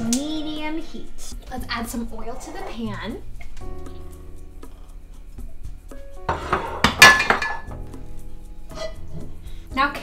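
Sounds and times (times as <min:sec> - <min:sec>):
background music: 0:00.0 - 0:10.0
frying pan clattering on stove grate: 0:06.3 - 0:07.7.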